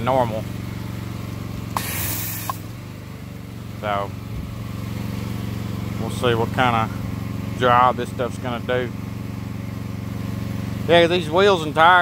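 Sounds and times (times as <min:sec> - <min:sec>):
small engine droning: 0:00.0 - 0:12.0
foam spray hissing on tire: 0:01.7 - 0:02.7.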